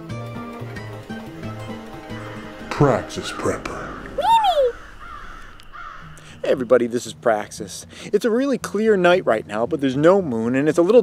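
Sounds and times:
short rising and falling call: 0:00.4 - 0:06.8.

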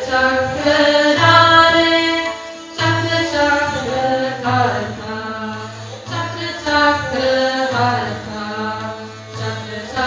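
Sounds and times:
bowed string instrument melody: 0:00.0 - 0:10.0.

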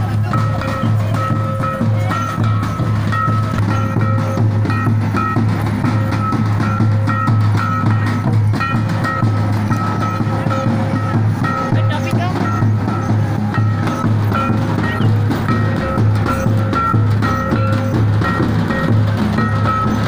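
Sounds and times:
drums beating: 0:00.0 - 0:20.0
high repeating melody: 0:00.0 - 0:20.0.

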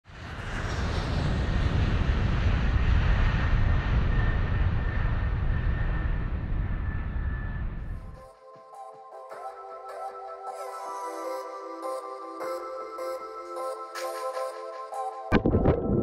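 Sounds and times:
aircraft engine roar: 0:00.1 - 0:08.3.

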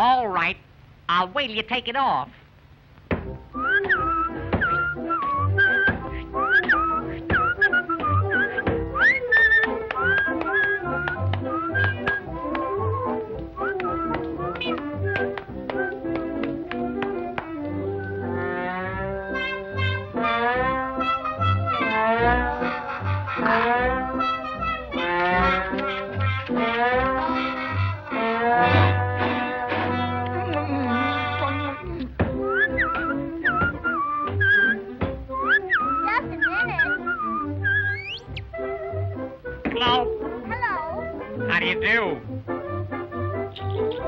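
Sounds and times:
cartoon orchestral music with brass: 0:03.6 - 0:44.0
sliding brass phrases: 0:16.1 - 0:32.0.

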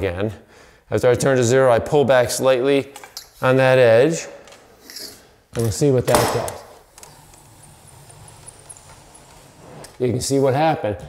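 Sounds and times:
drywall tool scraping a wall: 0:07.0 - 0:10.3.

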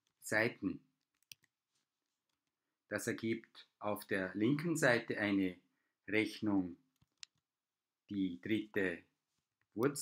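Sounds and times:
keyboard or mouse clicks: 0:01.0 - 0:01.5, 0:07.0 - 0:07.5.

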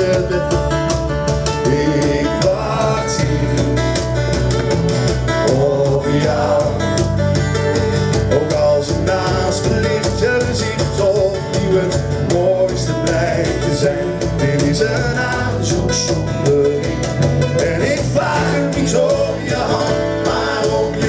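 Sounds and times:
electric bass line: 0:00.0 - 0:21.0
strummed acoustic guitars: 0:00.0 - 0:21.0
person singing: 0:01.5 - 0:04.1, 0:05.4 - 0:07.1, 0:08.3 - 0:21.0.

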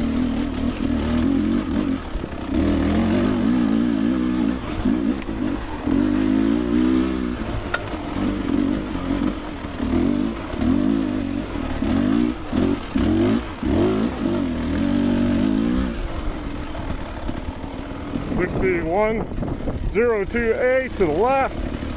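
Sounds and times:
dirt bike engine revving: 0:00.0 - 0:21.9.

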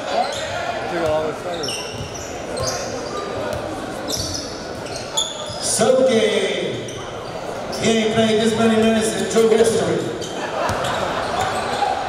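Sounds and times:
sneaker squeaks: 0:00.0 - 0:06.0, 0:06.8 - 0:08.2, 0:09.2 - 0:12.0.

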